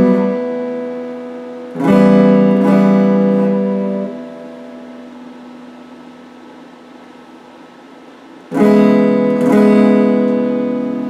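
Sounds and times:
amplifier hiss: 0.0s - 11.0s
electric guitar note ringing: 0.0s - 11.0s.

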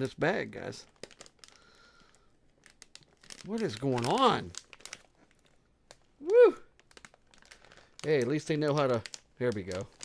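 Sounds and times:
popcorn bag crinkling: 0.0s - 10.0s.

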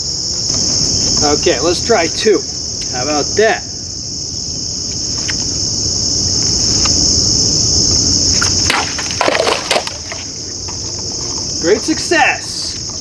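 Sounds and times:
insects chirring: 0.0s - 13.0s
machete cutting plastic bottles: 8.4s - 10.2s.

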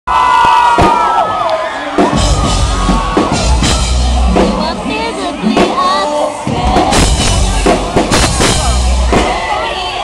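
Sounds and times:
crowd screaming and cheering: 0.1s - 10.0s
live band bass and drums: 0.6s - 10.0s.

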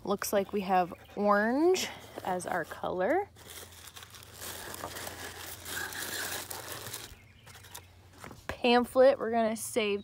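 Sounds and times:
tissue paper crinkling: 2.6s - 7.8s.

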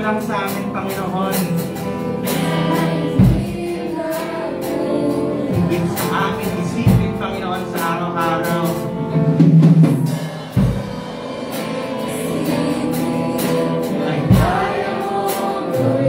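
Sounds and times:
voices singing together: 0.9s - 16.0s
drum hits: 8.6s - 15.6s.

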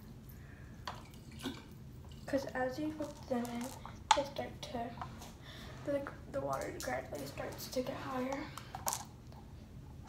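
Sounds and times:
marbles plopping into water bottle: 3.0s - 4.3s.

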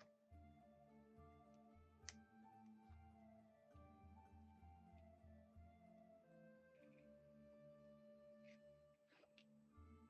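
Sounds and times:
background music held notes: 0.0s - 10.0s.

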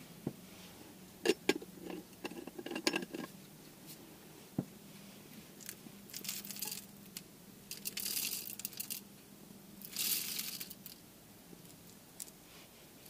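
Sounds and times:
coffee beans rattling into grinder: 7.7s - 9.0s, 9.8s - 10.9s.

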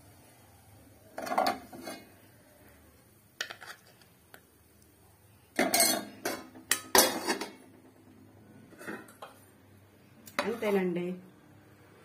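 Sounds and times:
spoon and plate clattering on pot: 1.2s - 2.1s, 5.6s - 7.6s.

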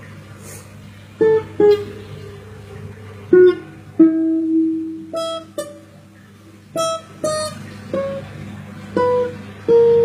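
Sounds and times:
low steady hum: 0.0s - 10.0s
plucked string notes: 1.2s - 10.0s.

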